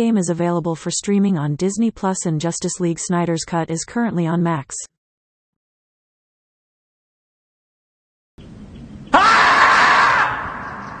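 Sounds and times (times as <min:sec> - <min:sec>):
animal screaming: 0:09.1 - 0:11.0.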